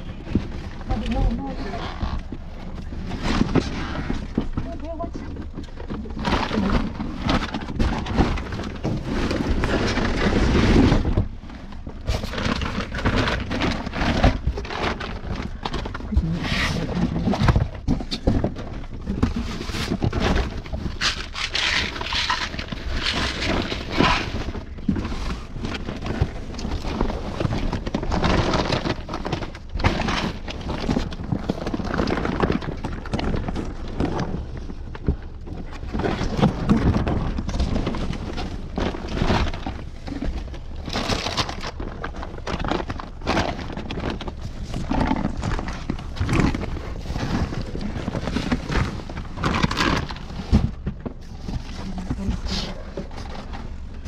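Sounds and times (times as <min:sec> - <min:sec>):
cardboard and plastic rustling: 0:00.0 - 0:54.0.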